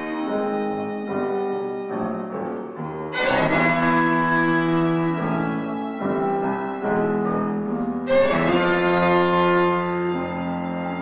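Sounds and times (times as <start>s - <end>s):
piano: 0.0s - 11.0s
violin: 0.0s - 11.0s.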